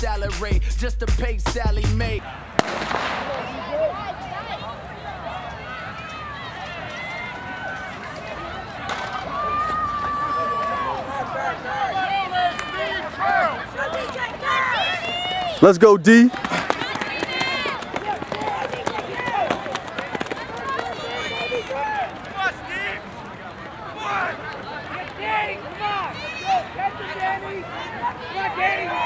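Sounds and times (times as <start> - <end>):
spectators shouting and cheering: 2.0 - 29.0.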